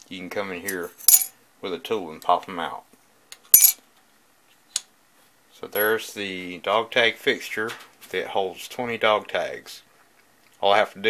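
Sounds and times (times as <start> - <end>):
metal tag clinking: 0.9 - 1.3, 3.6 - 3.8.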